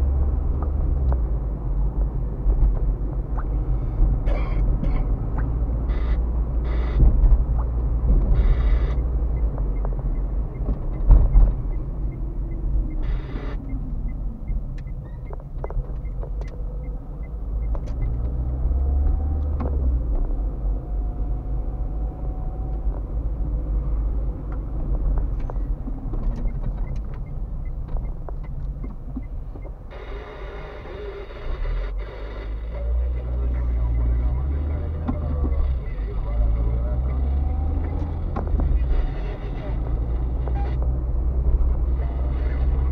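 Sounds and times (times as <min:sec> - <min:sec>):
car engine and road noise: 0:00.0 - 0:42.9.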